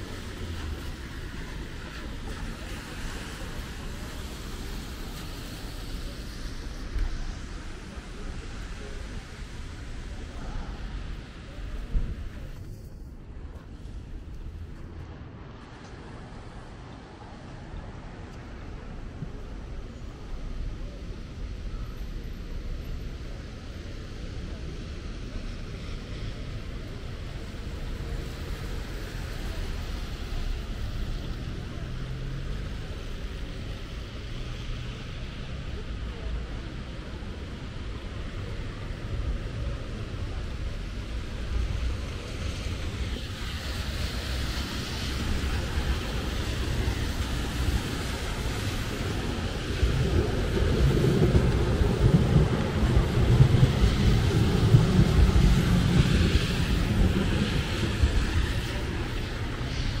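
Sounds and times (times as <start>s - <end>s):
wind rumble on microphone: 0.0s - 21.6s, 23.1s - 60.0s
car traffic on wet asphalt: 0.0s - 60.0s
passers-by talking: 0.0s - 60.0s.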